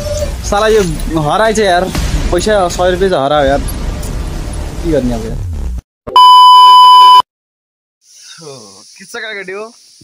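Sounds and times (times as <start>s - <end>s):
single-pitched test tone beep: 6.1s - 7.2s.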